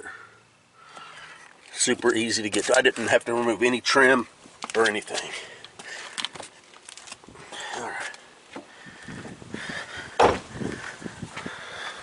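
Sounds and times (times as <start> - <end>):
handling clicks and rustles: 1.4 - 8.7
heavy thump: 10.2 - 10.7.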